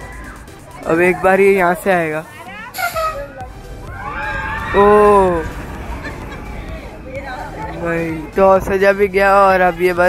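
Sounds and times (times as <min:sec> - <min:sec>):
low rumble: 0:03.5 - 0:10.0
high sustained cry: 0:03.8 - 0:08.0.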